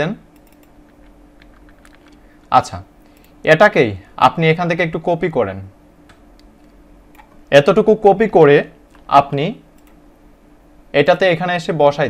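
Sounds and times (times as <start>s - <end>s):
low steady hum: 0.0s - 12.0s
keyboard and mouse clicks: 0.4s - 2.2s, 6.1s - 7.4s, 9.8s - 10.0s.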